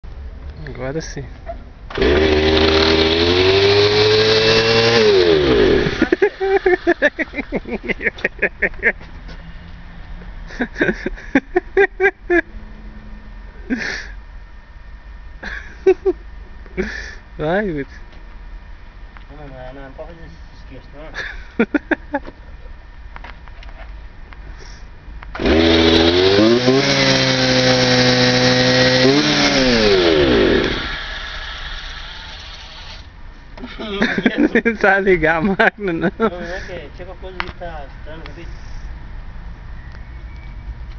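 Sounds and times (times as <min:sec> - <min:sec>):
small petrol engine running: 0:01.9 - 0:07.6, 0:25.4 - 0:33.1.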